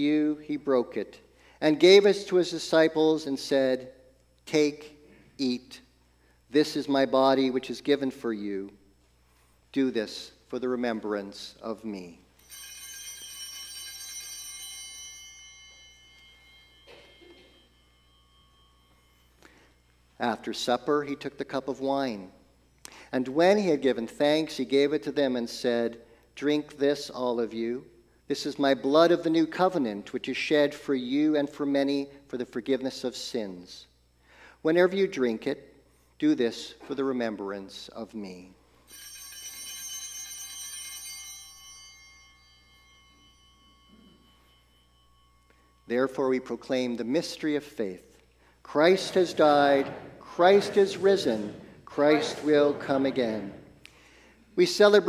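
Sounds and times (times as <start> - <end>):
altar bells ringing: 12.0 - 22.7, 38.7 - 55.0.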